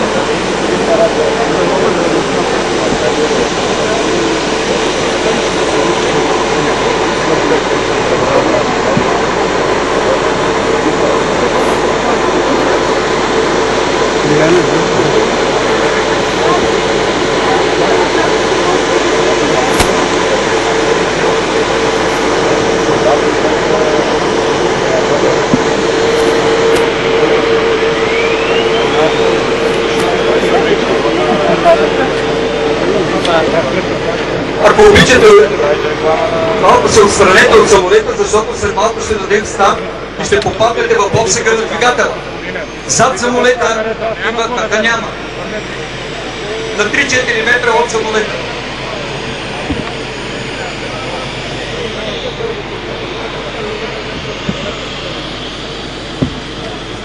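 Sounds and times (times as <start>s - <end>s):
loud engine drone: 0.0s - 57.0s
murmur of crowd voices: 0.0s - 57.0s.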